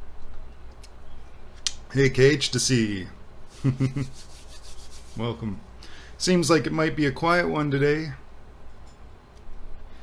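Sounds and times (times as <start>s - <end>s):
hands rubbing together: 3.7s - 5.3s.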